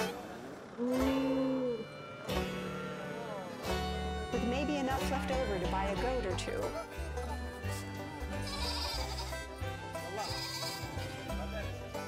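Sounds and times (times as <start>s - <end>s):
background music: 0.8s - 12.0s
goat bleating: 8.3s - 9.6s, 10.2s - 11.2s.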